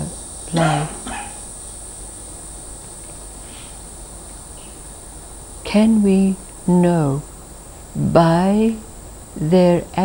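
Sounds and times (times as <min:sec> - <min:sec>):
high-pitched insect chirring: 0:00.0 - 0:10.0
low background hum: 0:00.0 - 0:10.0.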